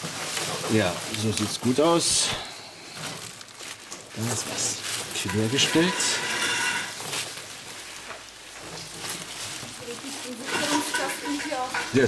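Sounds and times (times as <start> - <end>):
bubble wrap and wires rustling: 0.0 - 12.0.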